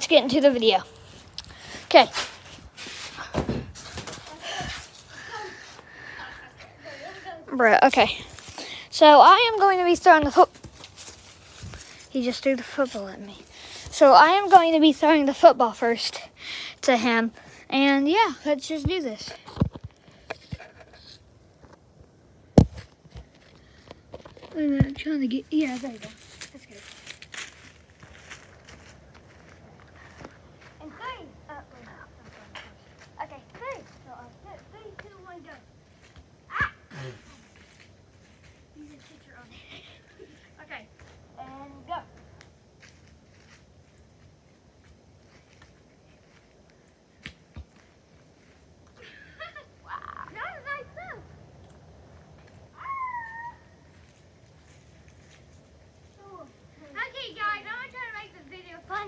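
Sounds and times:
footsteps crunching on dry leaves: 10.5s - 12.1s, 25.4s - 31.0s, 42.1s - 46.8s, 53.8s - 56.2s
child shouting: 36.5s - 36.9s, 52.7s - 53.8s.

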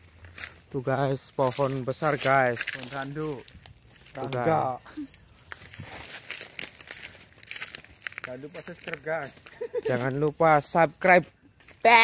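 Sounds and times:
soft crackles and clicks: 1.6s - 9.0s.

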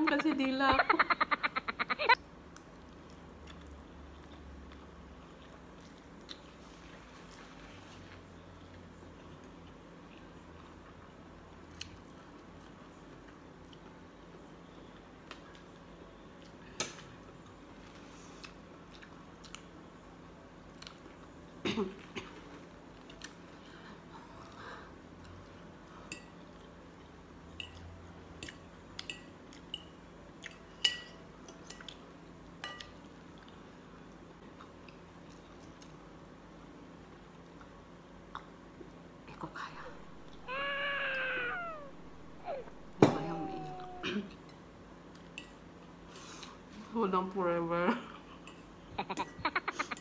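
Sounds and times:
quiet chewing: 2.5s - 14.0s, 17.4s - 19.8s, 20.7s - 25.6s
high-pitched cry: 39.8s - 44.2s.

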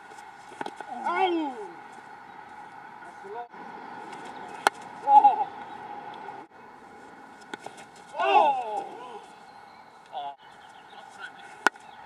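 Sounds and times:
outdoor background: 0.0s - 12.0s.

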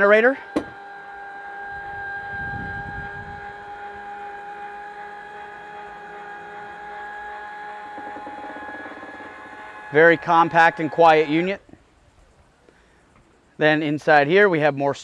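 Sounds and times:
faint rapid pulsing: 0.0s - 13.2s
mechanical hum: 0.0s - 13.8s.

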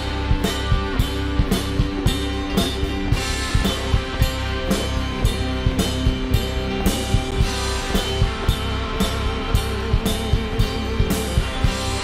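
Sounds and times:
bass guitar: 0.0s - 12.0s
drum kit beat: 0.0s - 12.0s
electric guitar notes: 0.0s - 12.0s.

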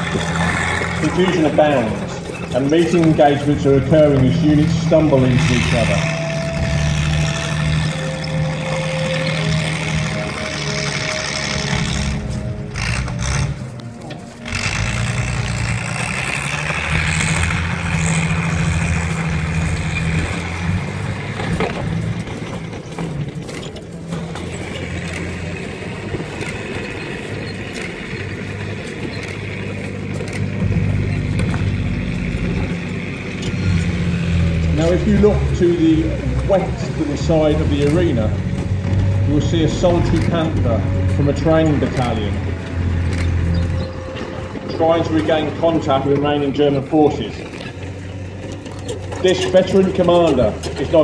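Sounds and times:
tank engine running: 0.0s - 51.0s.

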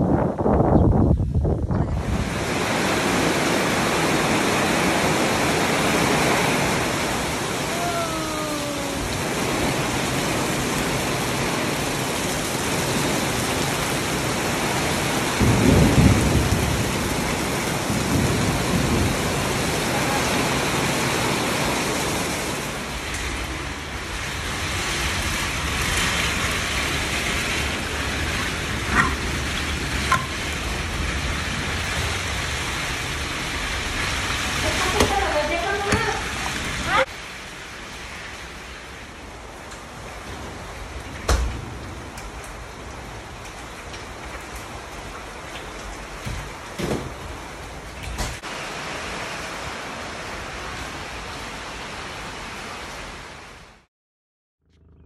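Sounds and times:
heavy rain pouring: 1.9s - 53.9s
water running off roof: 2.0s - 53.0s.

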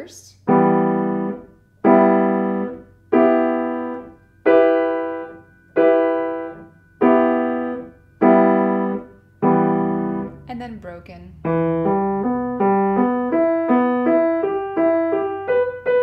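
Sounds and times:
piano chords: 0.0s - 16.0s.

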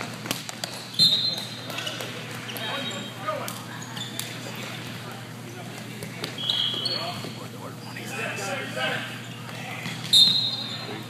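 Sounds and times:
shoe squeak: 0.7s - 4.8s, 6.4s - 8.1s, 9.2s - 11.0s.

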